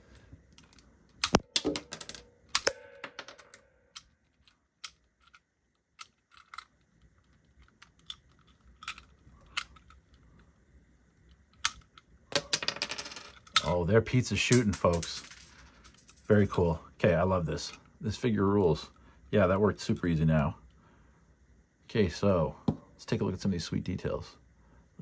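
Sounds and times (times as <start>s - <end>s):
plastic toy mechanism clicking: 3.9s - 10.1s.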